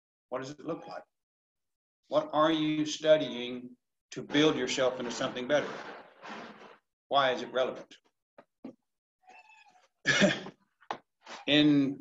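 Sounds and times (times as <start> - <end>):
loud cough: 10.1 - 10.5.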